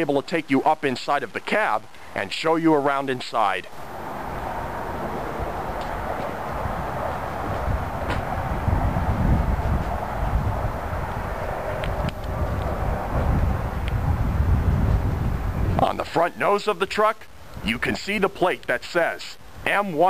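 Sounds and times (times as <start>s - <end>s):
steady hiss: 0.0s - 20.0s
low uneven rumble: 3.7s - 15.9s.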